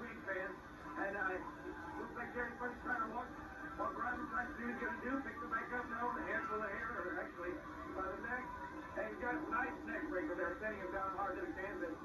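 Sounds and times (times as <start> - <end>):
arena crowd noise: 0.0 - 12.0
indistinct voices from television: 0.0 - 12.0.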